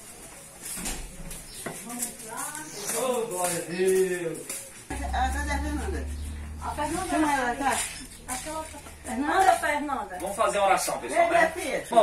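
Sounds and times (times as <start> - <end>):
low steady hum: 4.9 - 10.2.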